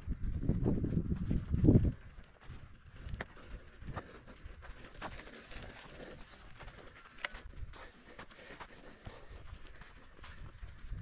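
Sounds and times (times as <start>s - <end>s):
bike rattles: 0.0s - 11.0s
bike tyres on dirt track: 0.0s - 11.0s.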